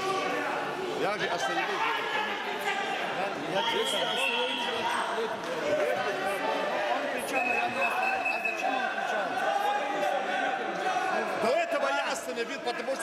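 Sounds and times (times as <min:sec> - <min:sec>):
chatter echoing in a hall: 0:00.0 - 0:13.0.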